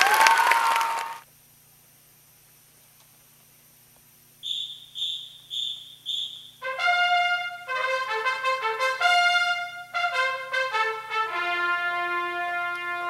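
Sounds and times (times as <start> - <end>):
short high whistle blasts: 4.4 - 6.7
marching band brass chords: 6.6 - 13.0.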